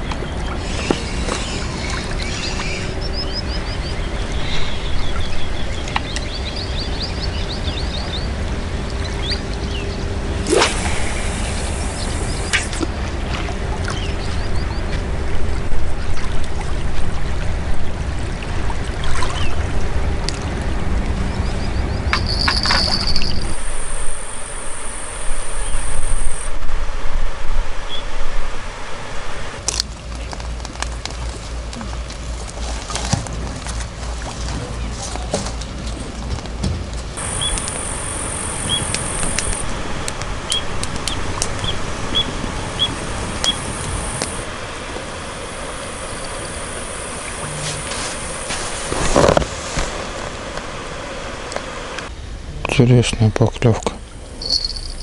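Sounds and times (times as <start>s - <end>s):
water lapping: 0.0s - 26.5s, 29.6s - 52.1s
faint steady hum: 0.0s - 55.0s
bird chirping: 0.6s - 8.3s, 21.3s - 26.4s, 37.2s - 39.6s, 40.5s - 44.4s, 54.4s - 55.0s
low rumble: 35.8s - 52.8s
sharp clicks: 37.3s - 41.6s.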